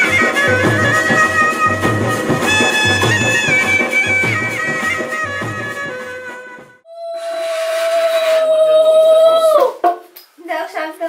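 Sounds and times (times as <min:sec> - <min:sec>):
conch shell blown: 0:00.0 - 0:08.5.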